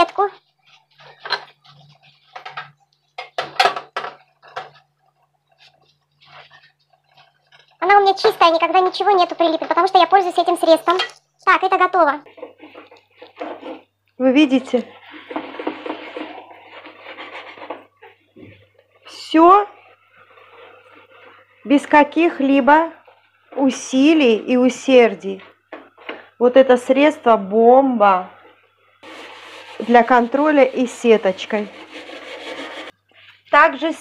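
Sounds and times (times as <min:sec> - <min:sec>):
sponge scrubbing metal grate: 0:29.0 - 0:33.0.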